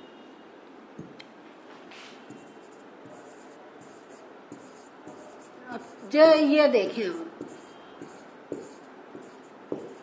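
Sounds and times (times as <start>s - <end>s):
pen scratching on whiteboard: 2.3s - 6.2s, 7.3s - 10.0s.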